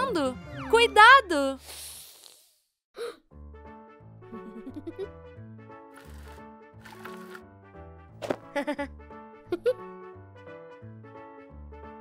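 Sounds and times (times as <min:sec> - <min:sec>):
cartoon background music: 0:00.0 - 0:01.6, 0:03.2 - 0:12.0.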